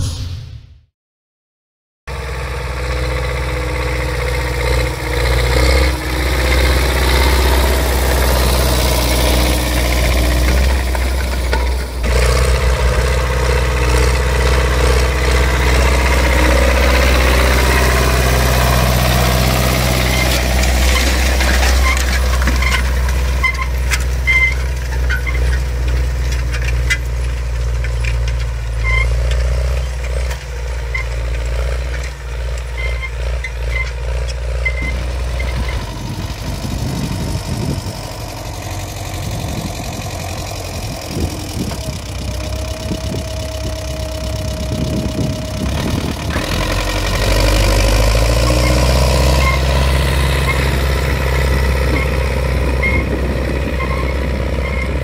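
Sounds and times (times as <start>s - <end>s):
tractor diesel engine running: 2.1s - 55.0s.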